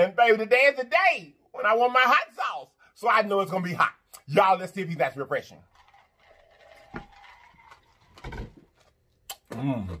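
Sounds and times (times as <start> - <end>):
man drinking from mug: 5.7 - 10.0.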